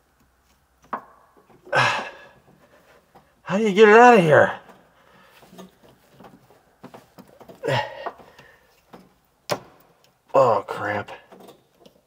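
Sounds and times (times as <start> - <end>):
small clicks and knocks: 0.0 - 1.7, 4.7 - 10.4, 11.2 - 12.0
man groaning with effort: 1.7 - 2.3, 7.6 - 8.1.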